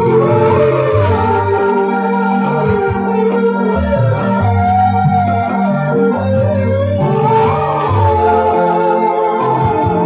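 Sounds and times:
live band instrumental: 0.0 - 10.0.

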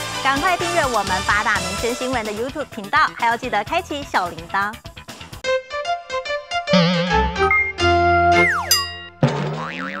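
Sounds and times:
playful logo jingle: 6.7 - 9.3.

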